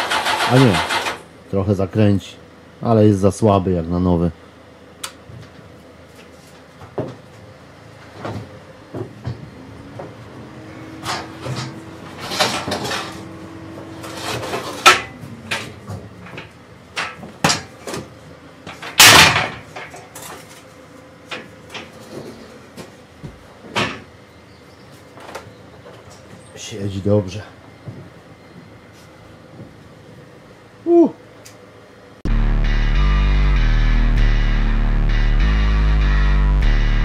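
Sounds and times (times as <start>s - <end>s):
loud bangs on sheet metal: 19.0s - 19.6s.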